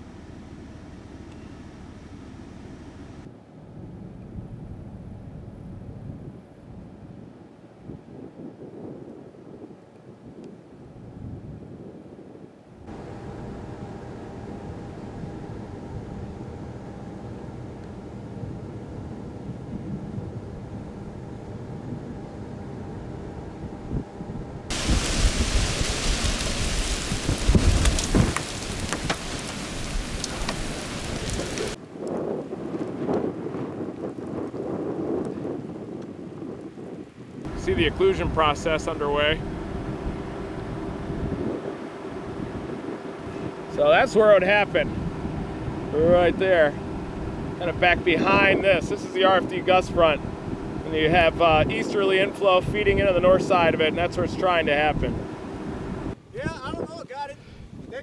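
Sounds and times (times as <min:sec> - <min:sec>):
wind and rain rushing: 0:00.0 - 0:58.0
low thunder rumble: 0:11.0 - 0:31.8.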